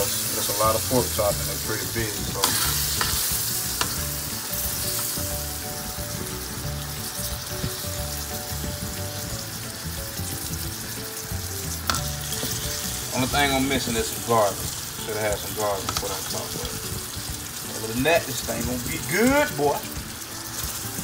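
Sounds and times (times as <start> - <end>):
pork chops sizzling in gravy: 0.0 - 21.0.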